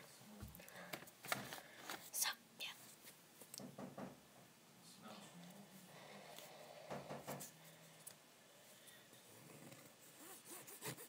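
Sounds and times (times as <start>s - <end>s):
girl whispering: 2.1s - 2.8s.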